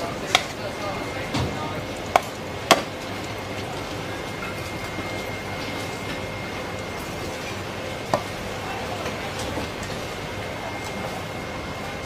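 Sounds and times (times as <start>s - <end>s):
machine hum: 0.0s - 12.0s
market background noise: 0.0s - 12.0s.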